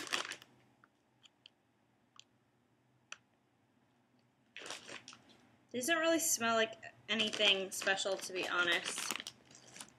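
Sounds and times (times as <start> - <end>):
chip bag crinkling: 0.0 - 0.5, 4.6 - 5.4, 7.1 - 9.9.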